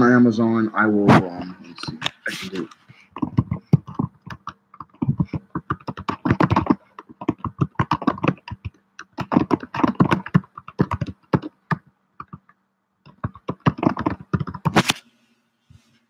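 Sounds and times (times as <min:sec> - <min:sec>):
rapid typing on keyboard: 0:03.1 - 0:14.8.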